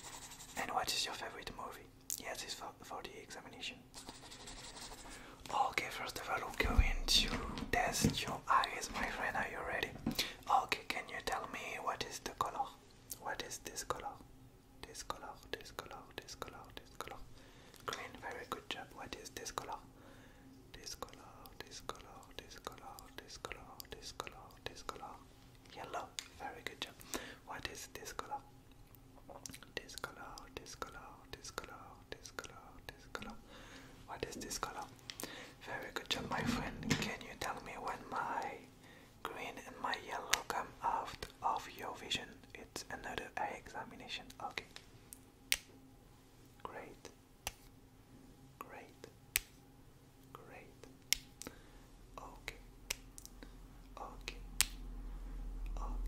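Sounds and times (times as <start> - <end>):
man whispering: 0.6 - 3.9, 5.4 - 19.9, 20.7 - 28.5, 29.2 - 33.4, 34.0 - 44.8, 46.6 - 47.2, 48.6 - 49.2, 50.3 - 50.9, 52.2 - 52.7, 53.9 - 54.5, 55.7 - 56.0
soft low thump: 6.6 - 8.4.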